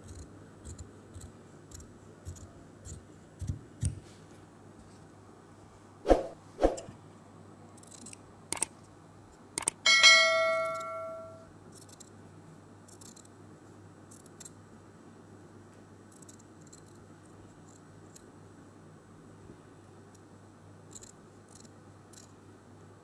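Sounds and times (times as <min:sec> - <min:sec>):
mouse clicks: 0:09.6 - 0:09.8
bell ring: 0:09.9 - 0:11.5.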